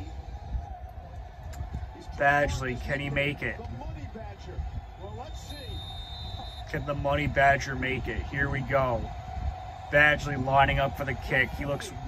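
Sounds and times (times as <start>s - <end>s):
sports commentary on television: 0.0s - 12.0s.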